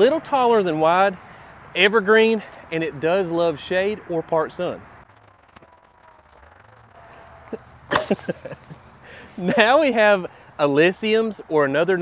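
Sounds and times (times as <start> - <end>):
man laughing: 7.1 - 9.9.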